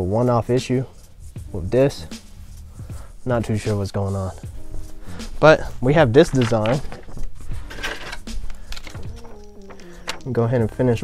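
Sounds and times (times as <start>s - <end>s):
faint background music: 0.0s - 11.0s
vinyl sheet rustling: 0.4s - 11.0s.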